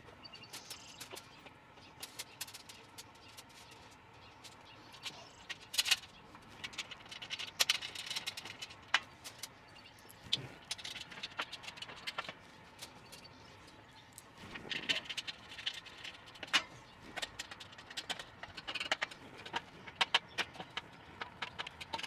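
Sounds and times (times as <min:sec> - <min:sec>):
metal clicks and rattles: 0:00.5 - 0:22.0.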